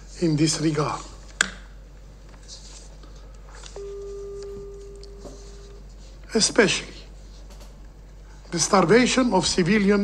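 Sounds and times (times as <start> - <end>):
steady single-pitched tone: 3.8 - 5.8.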